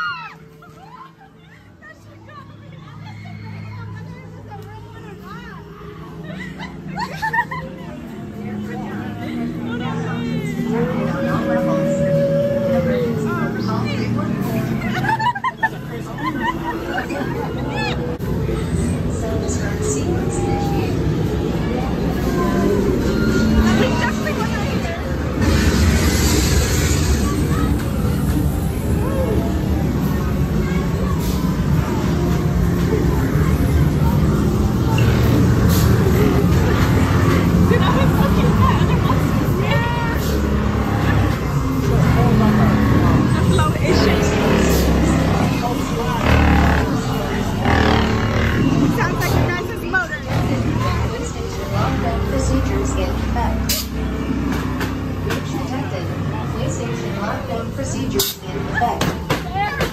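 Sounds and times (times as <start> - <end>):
voices: 0.0 - 59.9
rumbling music and effects: 2.4 - 59.9.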